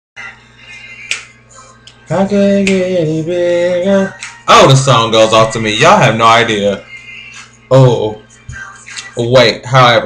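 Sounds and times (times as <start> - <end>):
faint music: 0.2 - 10.0
sharp snap: 1.1 - 1.3, 2.6 - 2.8.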